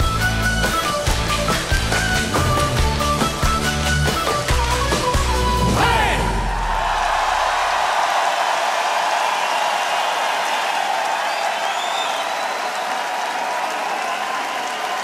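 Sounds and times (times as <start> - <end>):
audience applauding and cheering: 0.0 - 15.0.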